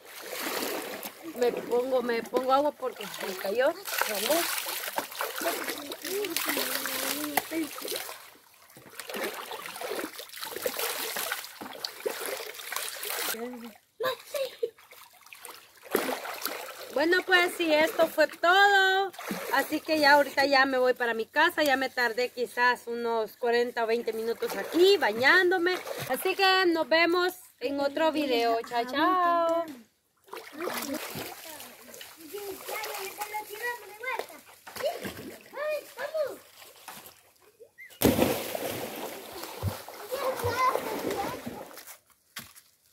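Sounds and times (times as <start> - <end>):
water pouring and splashing: 0.0 - 18.3, 19.0 - 20.0, 24.2 - 26.5, 30.3 - 37.4, 38.0 - 42.0
water splashing into creek: 0.0 - 20.3, 24.1 - 26.6, 30.2 - 37.4, 38.0 - 42.6.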